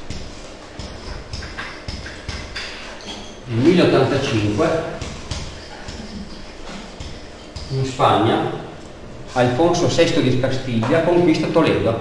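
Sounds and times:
pen tapping on whiteboard: 0.1s - 3.2s, 5.0s - 7.8s.

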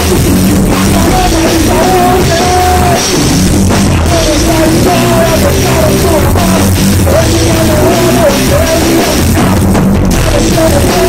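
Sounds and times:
drum kit: 0.0s - 11.0s
electric bass: 0.0s - 11.0s.

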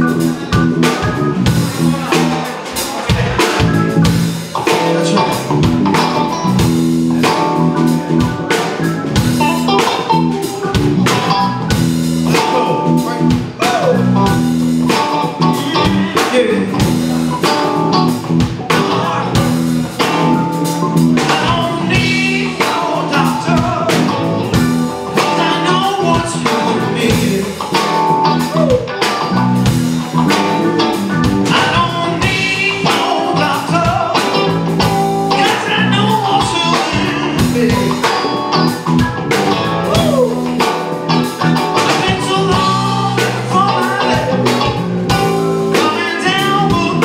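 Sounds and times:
drum kit beat: 0.0s - 47.0s
electric guitars: 0.0s - 47.0s.

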